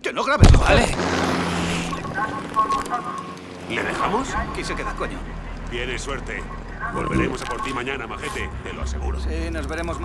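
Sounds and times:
low engine drone: 0.7s - 10.0s.

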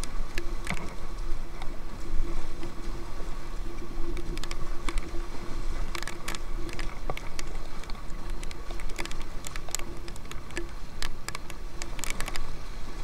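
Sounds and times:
river water rushing and splashing: 0.0s - 13.0s.

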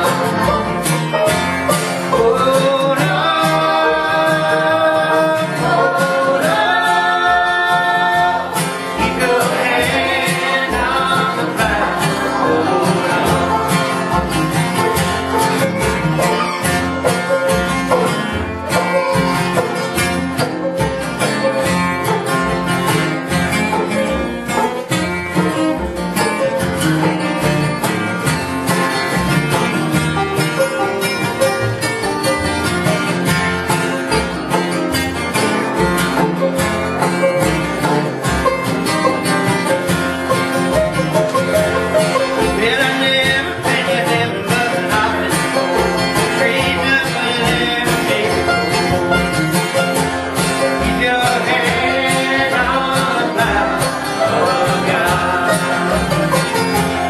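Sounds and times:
acoustic guitar: 0.0s - 57.0s
banjo: 0.0s - 57.0s
upright bass pulsing: 0.0s - 57.0s
voices singing held notes: 2.1s - 14.8s, 50.6s - 57.0s.

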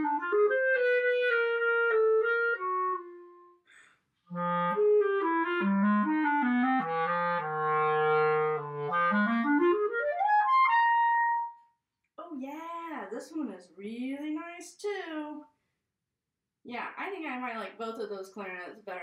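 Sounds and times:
solo clarinet playing: 0.0s - 3.6s, 4.3s - 11.6s.

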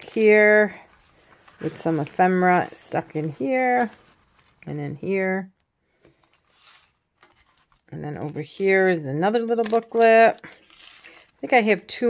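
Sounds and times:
paper rustling: 0.0s - 5.0s, 6.1s - 11.7s.

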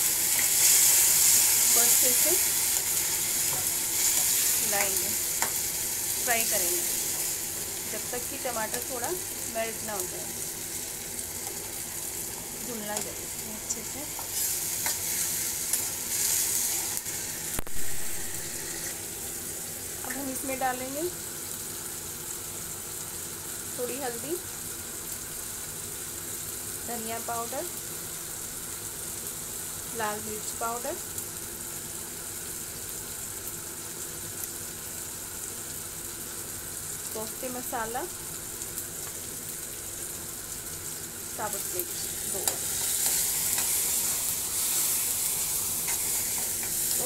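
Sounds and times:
vegetables sizzling in hot oil: 0.0s - 47.0s
steel spoon stirring in pan: 14.1s - 18.9s, 42.0s - 47.0s.

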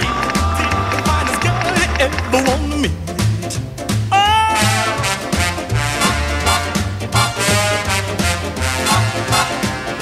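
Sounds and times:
upbeat song with bass and drums: 0.0s - 10.0s.

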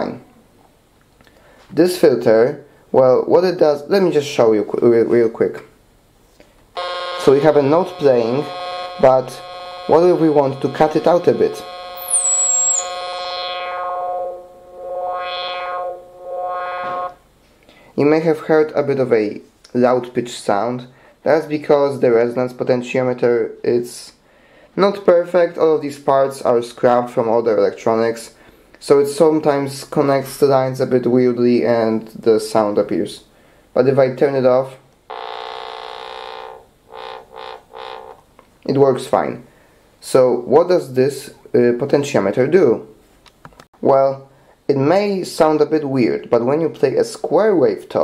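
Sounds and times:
high-pitched whine gliding down: 6.8s - 17.2s, 35.1s - 38.2s
synthesizer square-wave note: 6.8s - 17.2s, 35.1s - 38.3s.

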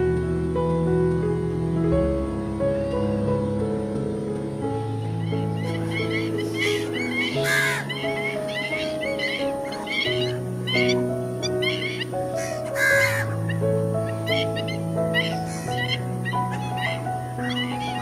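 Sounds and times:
slow background music: 0.0s - 18.0s
birds chirping: 2.7s - 18.0s
harsh bird calls: 4.8s - 18.0s.

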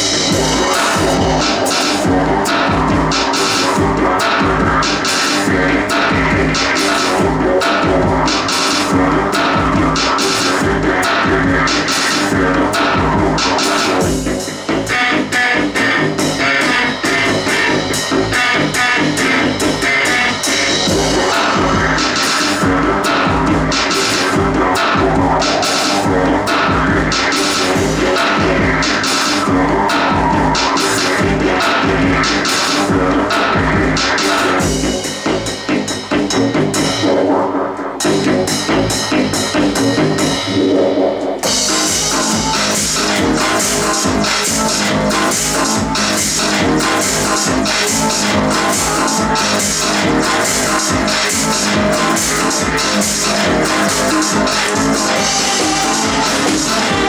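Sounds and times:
electronic keyboard: 0.0s - 57.0s.

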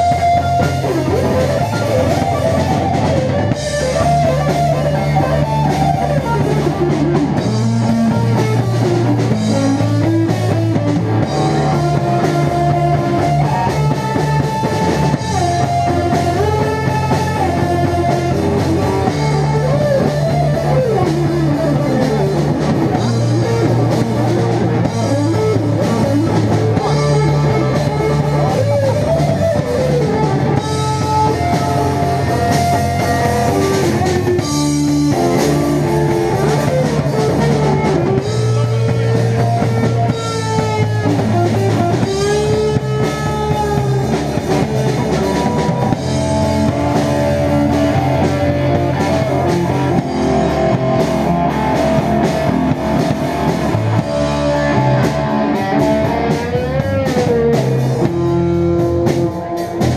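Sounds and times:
drum kit: 0.0s - 59.9s
electric guitar lead: 0.0s - 59.9s.

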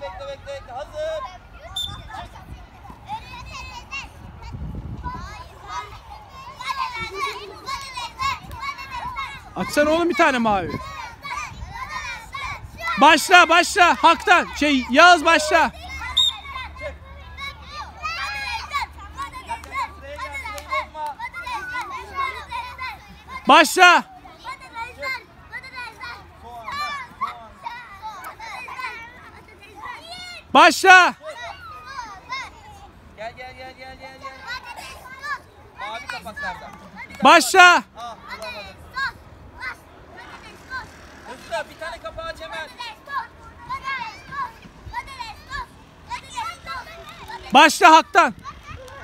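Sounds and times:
children chattering and calling out: 0.0s - 49.0s.

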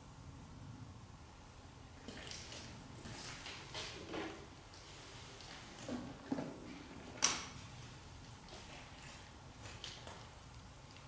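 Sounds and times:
faint knocks and creaks: 2.0s - 10.3s.

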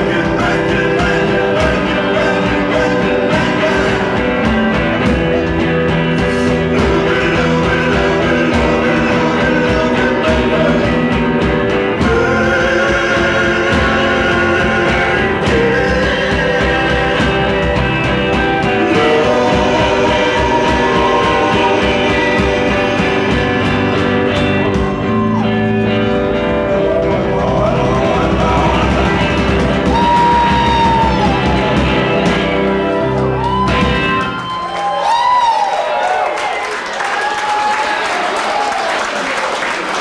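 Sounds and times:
man singing: 0.0s - 25.0s, 26.6s - 33.1s
steady drum beat: 0.0s - 34.8s
live rock band playing: 0.0s - 35.5s
bass guitar: 0.0s - 35.7s
electric guitar: 0.0s - 36.4s.

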